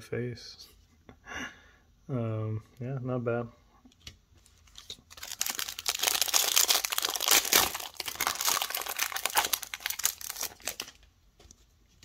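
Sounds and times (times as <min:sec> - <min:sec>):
foil wrapper tearing and crinkling: 0:04.4 - 0:11.0.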